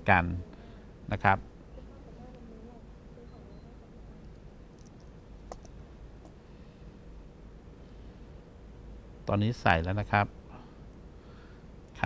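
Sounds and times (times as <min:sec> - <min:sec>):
low steady hum: 0:00.0 - 0:12.0
beads clicking: 0:04.8 - 0:05.7.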